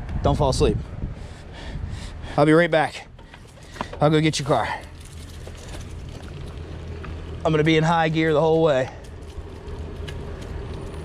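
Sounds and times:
wind noise on microphone: 0.0s - 2.4s
bicycle tyre noise on asphalt: 3.2s - 11.0s.

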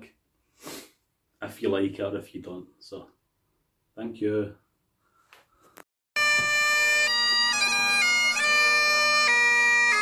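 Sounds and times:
bagpipe playing a held note: 6.2s - 10.0s.

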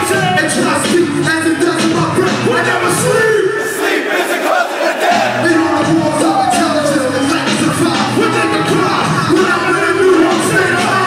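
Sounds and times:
concert crowd shouting along: 0.0s - 0.9s, 2.2s - 11.0s.

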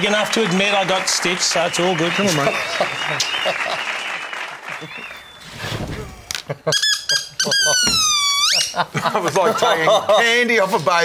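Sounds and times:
applause: 0.0s - 5.4s
short squeaks: 5.2s - 8.8s.

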